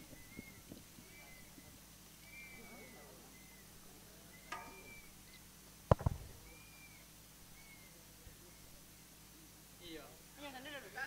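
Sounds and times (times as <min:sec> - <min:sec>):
faint high chirps: 0:00.0 - 0:05.5, 0:06.3 - 0:08.8
low thumps: 0:04.5 - 0:06.4.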